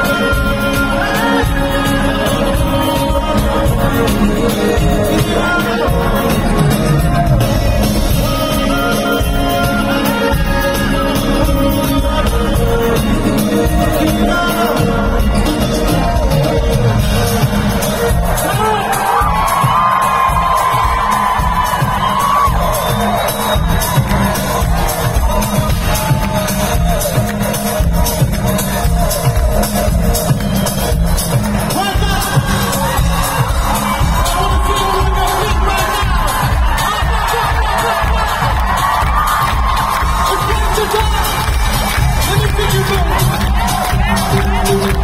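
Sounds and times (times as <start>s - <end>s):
crowd cheering and shouting: 0.0s - 45.0s
live pop music over sound system: 0.0s - 45.0s
pulsing bass beat: 0.0s - 45.0s.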